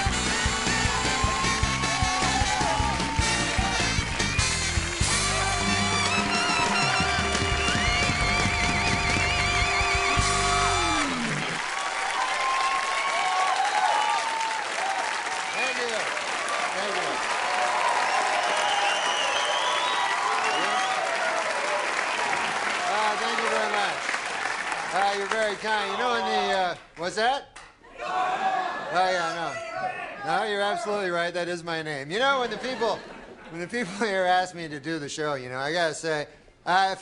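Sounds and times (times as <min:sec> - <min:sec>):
band music with held notes: 0:00.0 - 0:11.6
studio audience applauding and cheering: 0:00.0 - 0:27.3
shouts and whoops: 0:00.8 - 0:04.0, 0:11.8 - 0:15.9, 0:17.4 - 0:21.8, 0:27.9 - 0:30.9.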